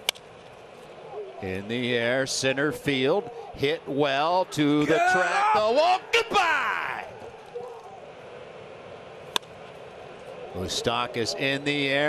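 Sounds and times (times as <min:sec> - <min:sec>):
wooden bat cracking: 0:00.0 - 0:00.5, 0:09.3 - 0:09.8
ballpark background noise: 0:00.0 - 0:12.0.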